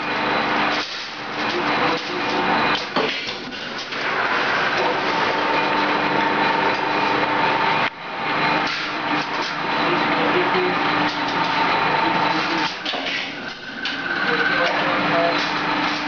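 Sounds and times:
machinery whine and hum: 0.0 - 16.0.

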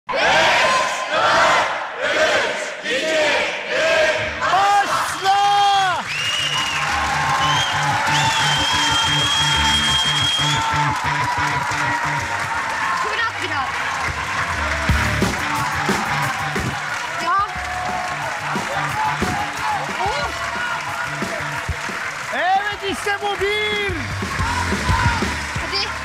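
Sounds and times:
audience shouting and cheering: 0.1 - 26.0
game show music with beat: 5.9 - 26.0.

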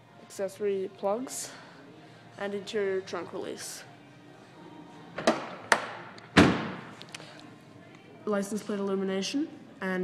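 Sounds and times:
car trunk lid thud: 5.2 - 6.9.

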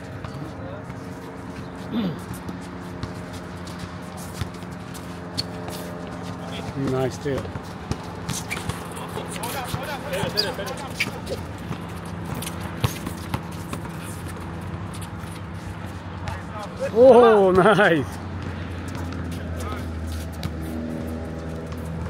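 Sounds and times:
basketball bouncing: 6.8 - 15.2
running footsteps: 18.1 - 22.0.

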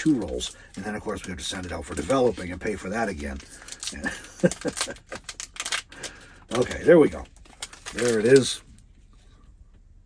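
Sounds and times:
foil wrapper tearing and crumpling: 0.0 - 8.7.

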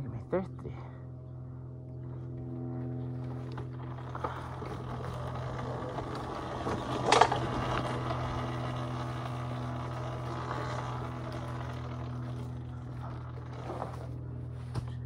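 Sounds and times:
electric motor hum: 0.0 - 15.0
tyres rushing on dirt: 3.1 - 14.8.

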